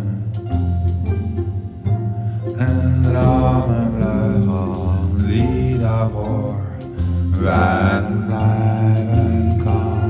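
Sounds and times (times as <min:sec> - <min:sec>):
instrumental accompaniment with bass: 0:00.0 - 0:10.0
person singing slowly: 0:02.6 - 0:10.0.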